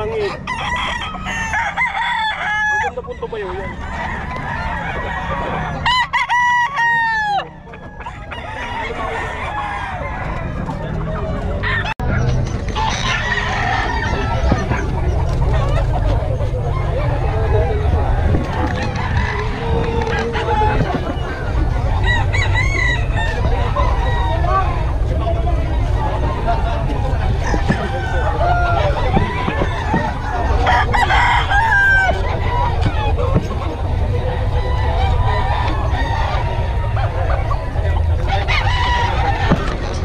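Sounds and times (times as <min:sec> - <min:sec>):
background chatter: 0:00.0 - 0:40.0
rooster clucking: 0:00.0 - 0:40.0
roosters crowing: 0:00.0 - 0:40.0.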